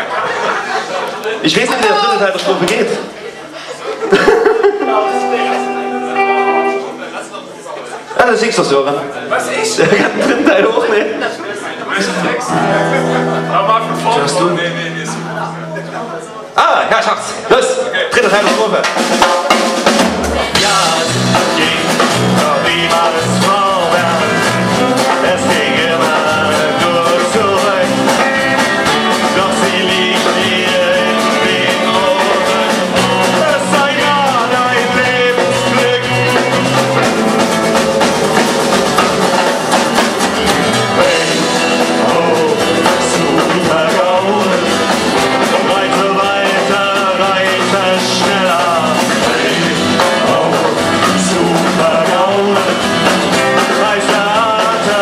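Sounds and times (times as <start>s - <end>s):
electric guitars: 4.7s - 7.3s, 12.0s - 16.6s, 19.0s - 55.0s
drum kit beat: 4.8s - 7.0s, 17.7s - 55.0s.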